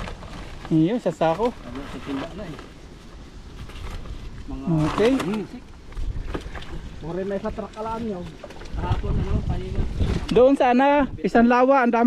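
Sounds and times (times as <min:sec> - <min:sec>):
wind rumble on microphone: 0:01.8 - 0:11.6
water sloshing and splashing: 0:07.6 - 0:10.3.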